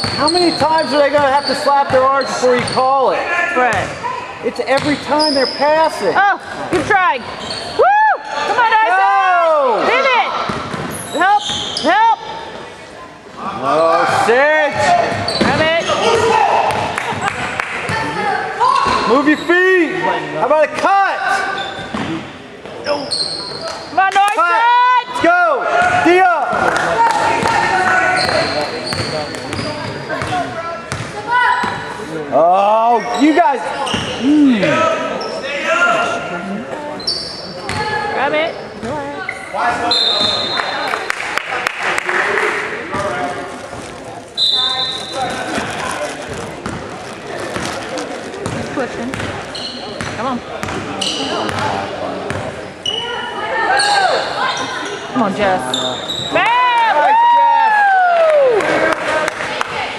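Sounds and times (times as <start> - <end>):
sneakers squeaking: 0.0 - 7.8, 10.0 - 12.6, 14.7 - 20.0, 21.3 - 24.0, 25.1 - 32.0, 33.0 - 41.1, 42.9 - 56.5
crowd voices echoing: 0.0 - 59.9.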